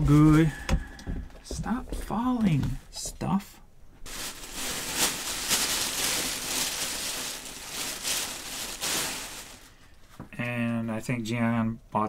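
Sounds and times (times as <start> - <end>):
plastic bag rustling: 4.0 - 10.2.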